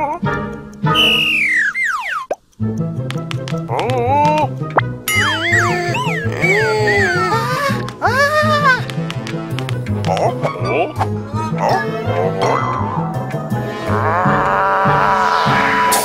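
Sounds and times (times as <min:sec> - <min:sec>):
bouncy children's music: 0:00.0 - 0:14.6
falling whistle-like glide: 0:01.0 - 0:02.3
springy boing tones: 0:01.3 - 0:02.4, 0:05.1 - 0:06.2.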